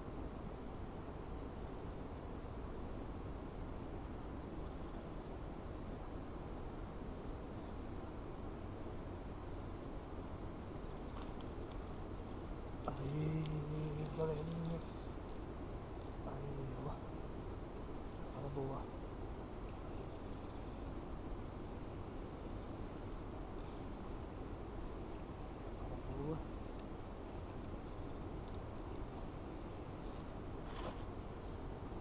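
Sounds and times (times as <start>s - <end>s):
outdoor background noise: 0.0s - 32.0s
man humming: 12.9s - 14.9s
faint clicks: 28.4s - 28.6s.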